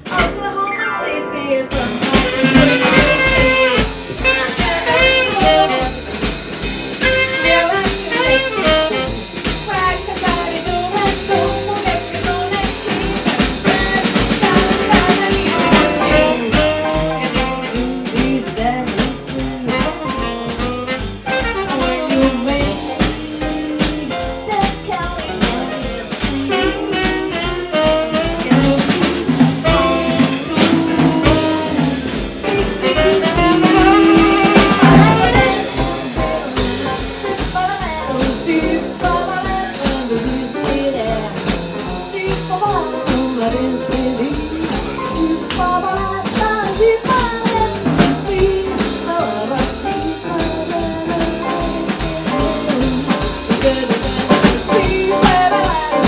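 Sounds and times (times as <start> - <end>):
drum kit steady beat: 0.0 - 0.5, 1.7 - 56.0
bass: 0.0 - 56.0
piano: 0.0 - 56.0
tenor saxophone melody: 0.8 - 6.2, 7.0 - 9.5, 13.6 - 18.8, 19.7 - 37.0.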